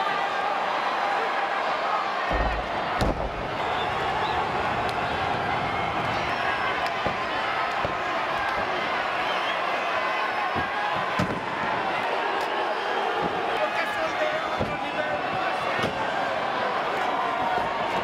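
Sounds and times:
crowd shouting: 0.0s - 18.0s.

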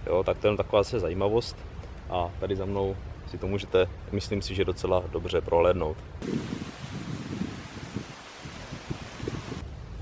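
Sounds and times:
rustling leaves: 0.0s - 10.0s
gusty wind on microphone: 6.2s - 10.0s.

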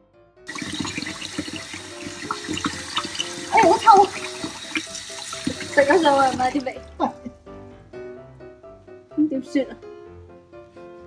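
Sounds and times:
tap water splashing in sink: 0.5s - 7.1s.

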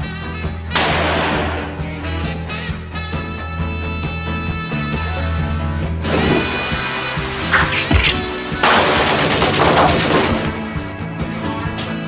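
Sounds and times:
automatic rifle fire: 0.8s - 1.8s, 8.6s - 10.5s.

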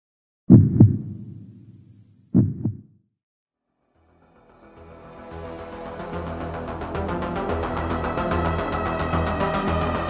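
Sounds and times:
heartbeat double thumps: 0.5s - 3.0s.

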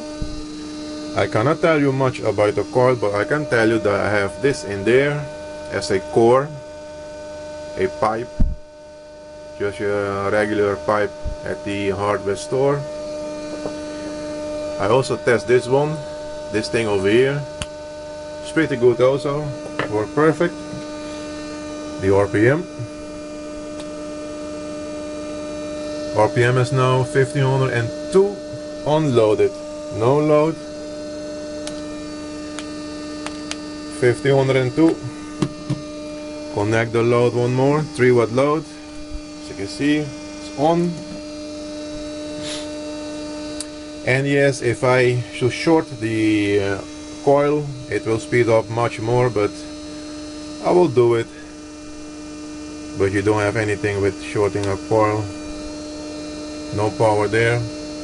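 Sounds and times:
motor humming with clear tone: 0.0s - 58.0s.

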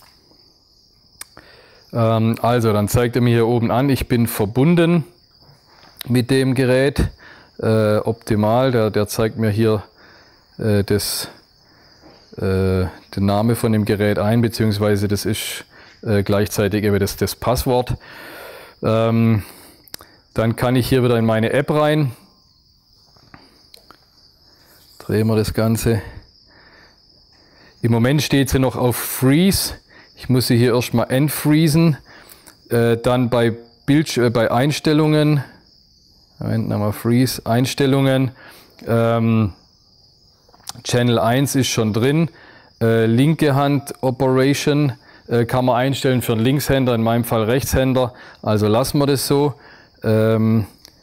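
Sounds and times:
man speaking: 1.9s - 5.2s, 6.0s - 9.9s, 10.6s - 11.4s, 12.3s - 18.0s, 18.8s - 19.6s, 20.4s - 22.2s, 25.0s - 26.3s, 27.8s - 32.1s, 32.7s - 35.6s, 36.4s - 39.6s, 40.7s - 50.8s
faint high-pitched tone: 43.6s - 44.2s.

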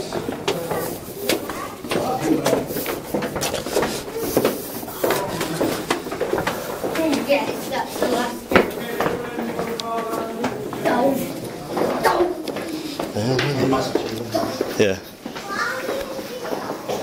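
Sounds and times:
indistinct voices talking: 0.0s - 17.0s.

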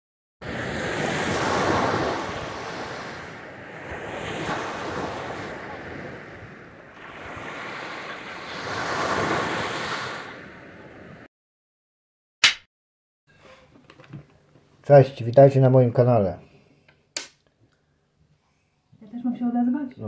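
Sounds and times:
waves breaking on a beach: 0.4s - 11.3s.

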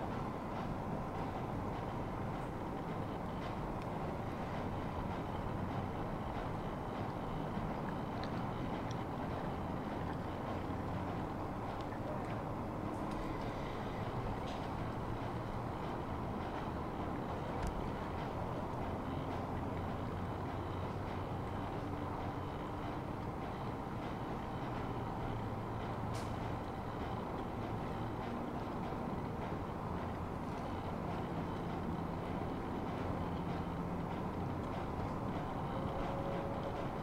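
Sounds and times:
distant traffic rumble: 0.0s - 37.0s.

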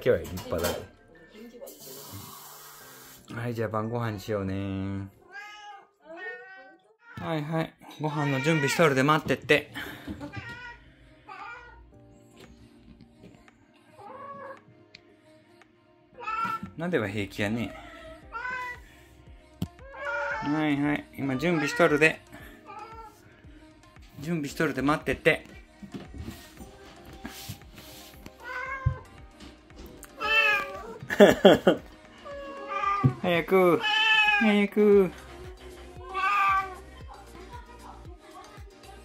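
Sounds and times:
cat meowing: 5.2s - 7.3s, 8.1s - 8.9s, 10.3s - 11.8s, 14.0s - 14.6s, 16.2s - 16.7s, 17.9s - 18.8s, 19.8s - 20.6s, 21.4s - 22.1s, 28.4s - 29.1s, 30.2s - 31.0s, 32.2s - 33.2s, 33.8s - 34.5s, 36.0s - 36.8s
kitten meowing: 30.2s - 31.0s, 33.8s - 34.4s, 36.1s - 36.8s.

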